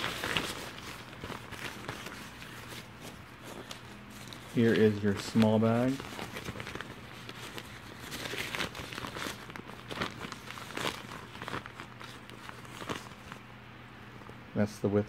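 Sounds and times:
nylon fabric rustling and crinkling: 0.0 - 13.5.

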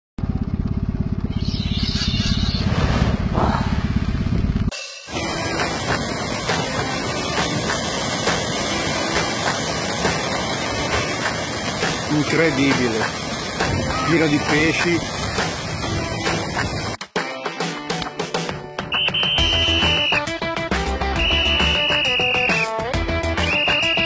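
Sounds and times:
low pulsing rumble: 0.2 - 17.0
surf noise: 4.7 - 17.0, 18.9 - 24.0.

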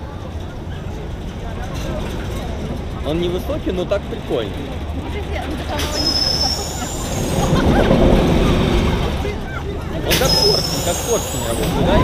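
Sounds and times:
faint voices: 0.0 - 12.0
wind rumbling on microphone: 6.8 - 12.0.

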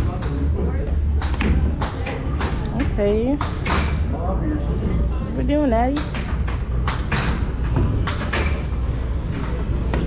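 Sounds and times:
knocks and clatters: 5.9 - 8.7.

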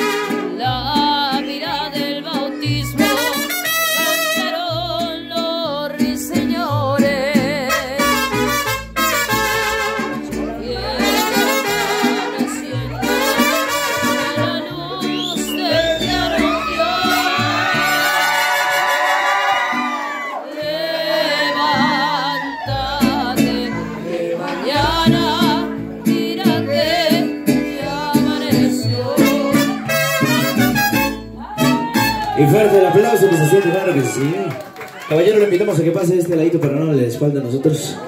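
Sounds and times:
mariachi band playing: 0.0 - 38.0
people singing: 10.3 - 18.8, 19.4 - 30.2.

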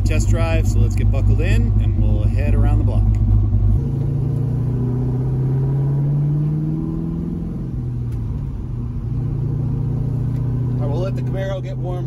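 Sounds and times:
car engine and exhaust from cabin: 0.0 - 12.0.

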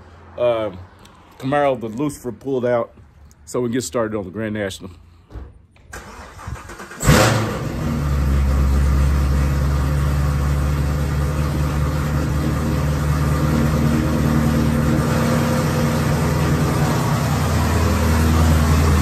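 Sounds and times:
car engine starting and revving: 5.9 - 19.0
car engine idling: 6.0 - 19.0.

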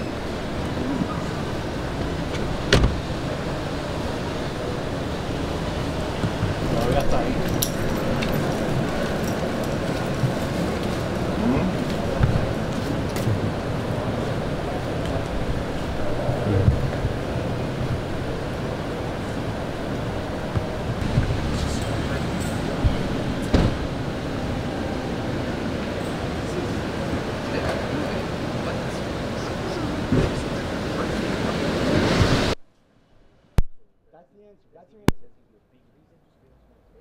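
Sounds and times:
indistinct voices talking: 0.0 - 32.6
city street noise: 0.0 - 37.0.

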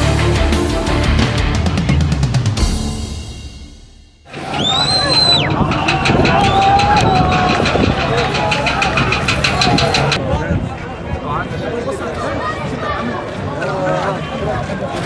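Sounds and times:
driving intro music: 0.0 - 5.0
crowd of protesters shouting: 4.3 - 10.2
fast even ticking: 5.1 - 10.2.

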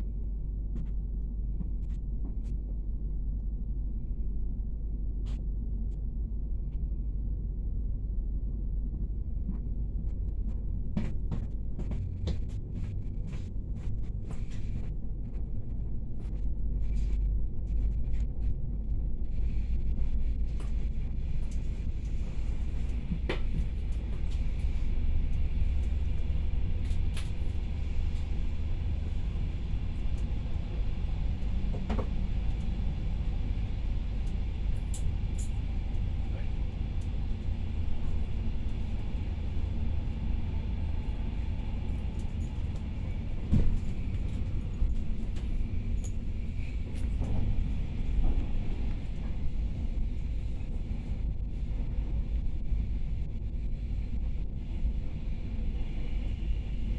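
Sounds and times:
train coach rumbling on rails: 0.0 - 56.9.

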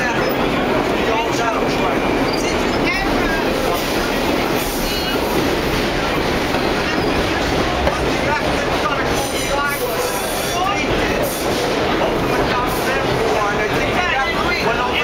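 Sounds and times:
subway wheels rumbling on rails: 0.0 - 15.0.

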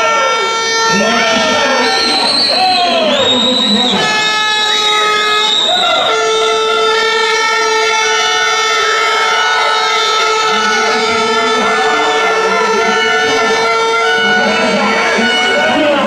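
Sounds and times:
horn held on long note: 0.0 - 16.0
spectators shouting and cheering: 0.0 - 16.0.

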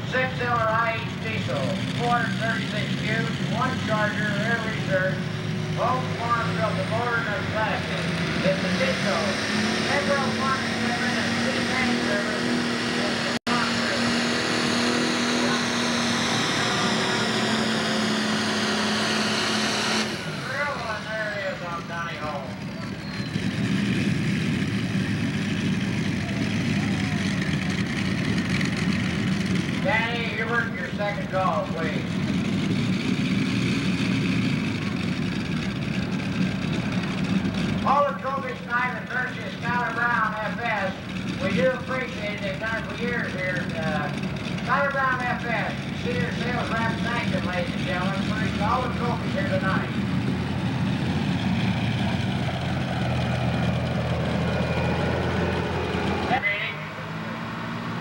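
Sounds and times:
diesel tractor engine: 0.0 - 58.0
turbocharger whine: 0.0 - 58.0.

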